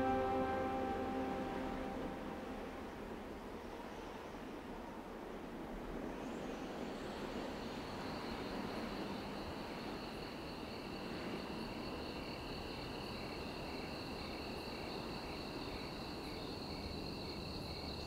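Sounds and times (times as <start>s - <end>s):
faint cricket chirp: 0.0s - 18.0s
faint low background noise: 0.0s - 18.0s.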